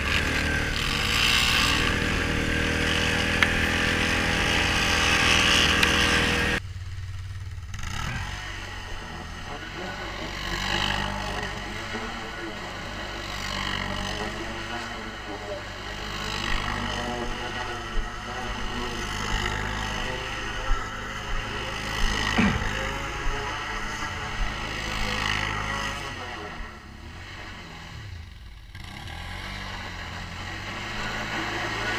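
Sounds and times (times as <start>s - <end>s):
quad bike engine running: 0.0s - 31.9s
sharp knocks: 22.2s - 22.9s.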